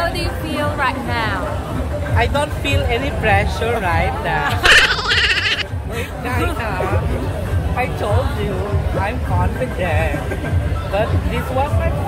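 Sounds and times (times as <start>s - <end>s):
voices talking: 3.8s - 8.2s
woman's high-pitched laugh: 4.6s - 5.6s.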